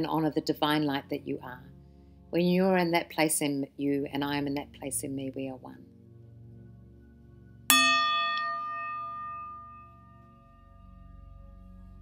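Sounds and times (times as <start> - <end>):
soft ambient music: 0.0 - 12.0
bell ringing: 7.7 - 10.7.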